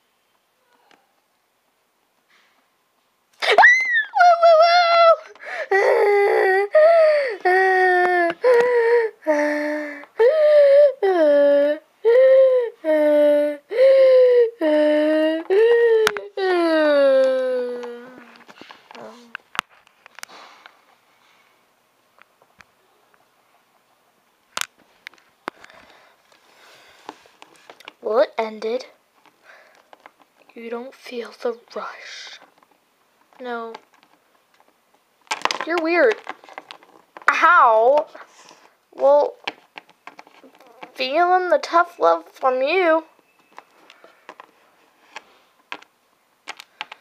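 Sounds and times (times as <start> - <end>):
young person's wordless held vocals: 37.3 - 39.4.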